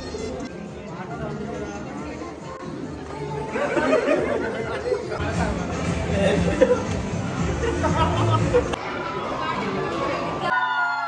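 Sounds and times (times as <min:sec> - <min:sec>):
music playing: 0:00.0 - 0:10.5.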